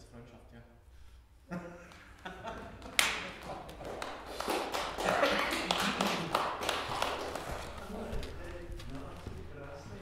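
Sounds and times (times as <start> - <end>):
footsteps: 6.2 - 10.0
person speaking: 7.4 - 10.0.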